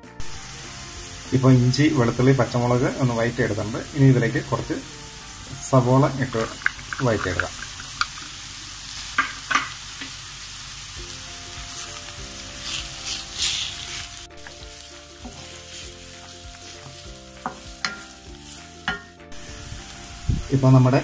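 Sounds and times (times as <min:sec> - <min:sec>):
onions sizzling in hot oil: 0:00.0 - 0:21.0
spatula scraping metal pan: 0:12.6 - 0:13.9.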